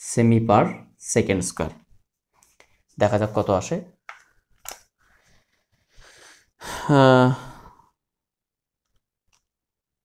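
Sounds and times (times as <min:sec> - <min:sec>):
man breathing in: 0:05.0 - 0:08.0
man sighing: 0:06.0 - 0:08.0.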